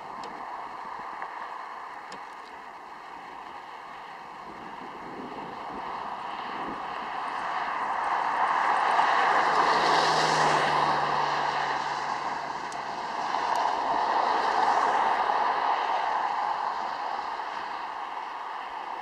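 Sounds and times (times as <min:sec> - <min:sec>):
low engine hum: 0:00.0 - 0:19.0
rushing vehicle noise: 0:00.0 - 0:19.0.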